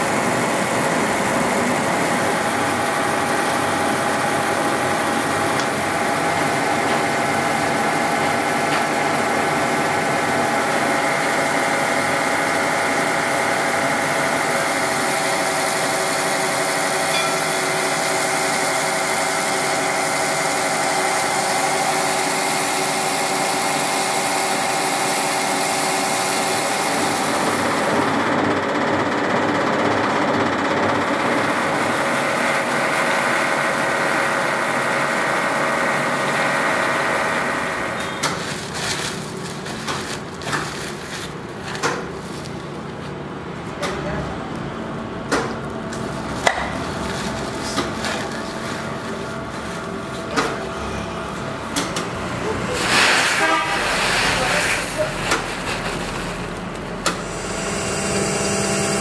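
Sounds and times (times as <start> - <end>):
machinery mechanical drone: 42.7 - 59.0.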